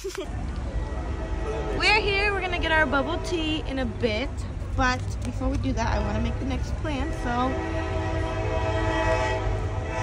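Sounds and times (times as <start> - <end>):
train horn chord: 0.7 - 3.7, 6.0 - 10.0.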